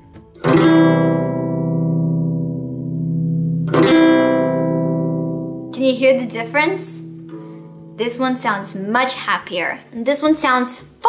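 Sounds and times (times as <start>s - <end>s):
classical guitar chord strummed: 0.0s - 8.7s.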